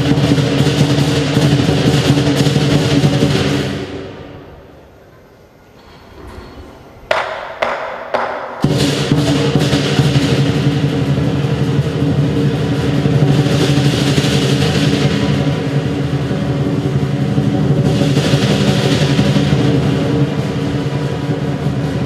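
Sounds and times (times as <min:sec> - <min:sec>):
drum rolling: 0:00.0 - 0:04.5, 0:06.1 - 0:22.0
clashing cymbals: 0:00.0 - 0:05.2, 0:05.8 - 0:22.0.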